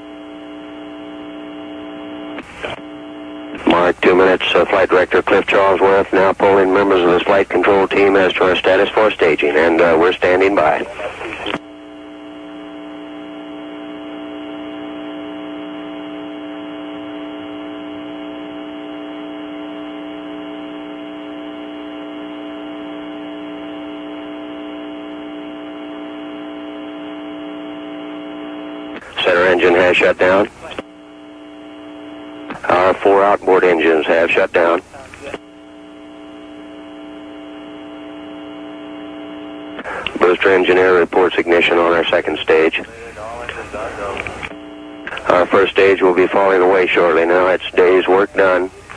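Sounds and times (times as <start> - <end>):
electrical hum: 0.0 - 48.9.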